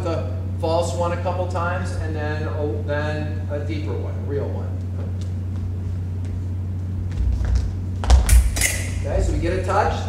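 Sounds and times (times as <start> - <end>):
feet stamping: 5.0 - 9.4
footsteps on wooden floor: 5.5 - 8.4
fencing blades clashing: 8.1 - 9.2.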